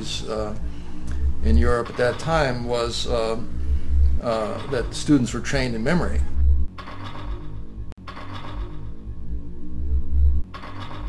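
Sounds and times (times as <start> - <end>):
loud low rumble: 0.0 - 6.7, 8.9 - 10.5.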